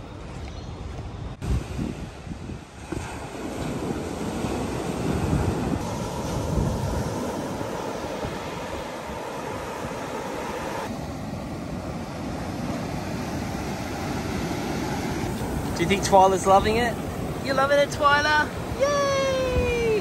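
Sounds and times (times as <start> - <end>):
wind gusting on microphone: 0.0 - 20.0
ocean surf breaking on beach: 1.4 - 20.0.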